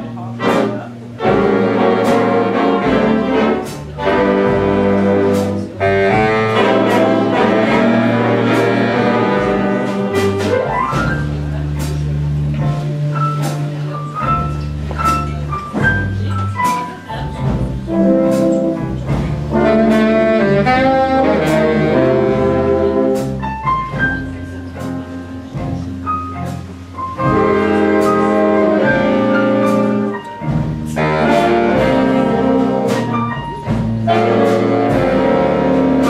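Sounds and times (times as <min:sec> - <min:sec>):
horn section chords: 0:00.0 - 0:13.1, 0:16.7 - 0:24.4, 0:26.7 - 0:36.0
double bass: 0:00.0 - 0:36.0
jazz big band playing: 0:00.0 - 0:36.0
piano: 0:00.0 - 0:36.0.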